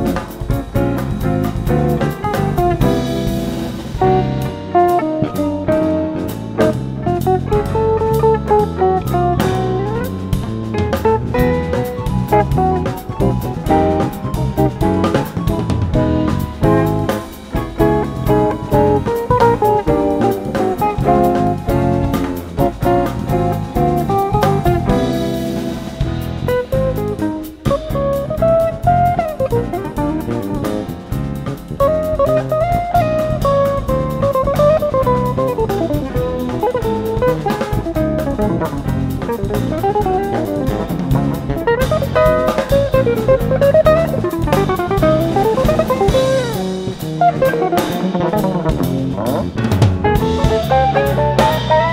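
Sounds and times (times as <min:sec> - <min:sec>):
bass: 0:00.0 - 0:51.9
drum kit: 0:00.0 - 0:51.9
electric guitar lead melody: 0:00.0 - 0:51.9.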